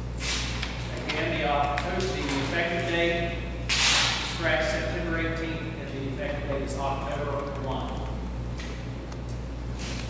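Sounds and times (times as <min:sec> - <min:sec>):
low electrical hum: 0:00.0 - 0:10.0
person reading aloud: 0:00.9 - 0:03.4, 0:04.3 - 0:08.2.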